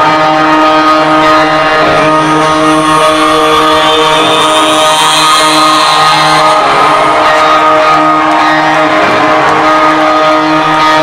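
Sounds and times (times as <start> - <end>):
rock band droning chord: 0.0 - 11.0.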